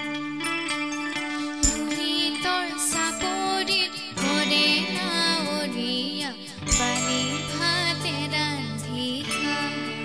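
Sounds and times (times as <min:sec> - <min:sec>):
plucked guitar notes: 0:00.0 - 0:10.0.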